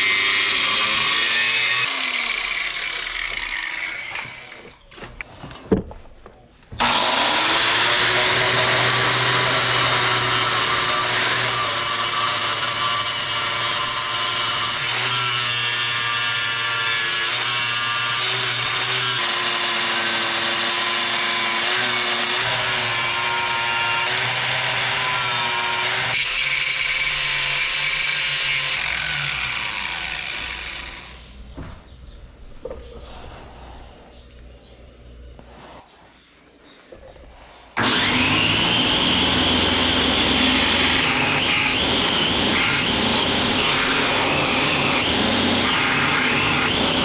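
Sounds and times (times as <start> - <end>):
angle grinder cutting steel: 0.0 - 4.7, 6.8 - 31.4, 37.8 - 47.0.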